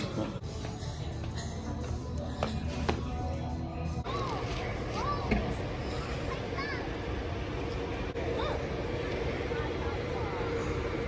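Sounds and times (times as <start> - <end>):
distant indistinct voices: 0.0 - 11.0
faint hum: 0.0 - 11.0.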